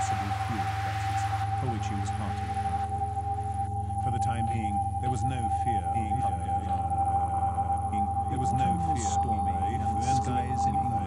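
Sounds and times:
synthesizer electronic music: 0.0 - 11.0.

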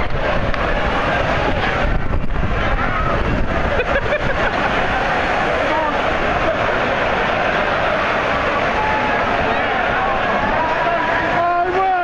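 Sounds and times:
faint crowd voices: 0.0 - 12.0
heavy rain pouring: 0.0 - 12.0.

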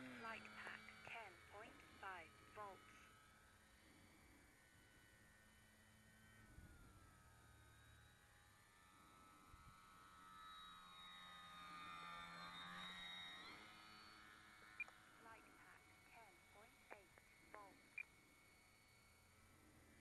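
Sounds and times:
model plane motor whine: 0.0 - 16.6, 17.2 - 20.0.

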